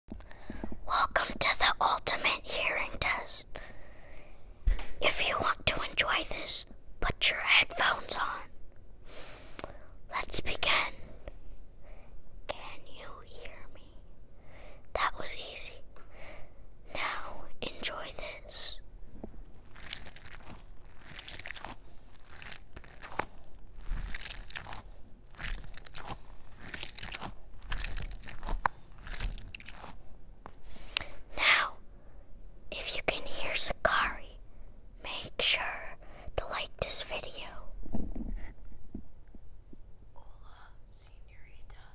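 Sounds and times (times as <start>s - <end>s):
boy whispering: 0.8s - 3.6s, 5.0s - 8.6s, 10.1s - 11.1s, 12.5s - 14.0s, 14.9s - 15.9s, 16.9s - 18.8s, 31.3s - 31.8s, 32.7s - 34.4s, 35.0s - 37.7s, 40.2s - 41.9s
close crunching: 19.6s - 30.0s.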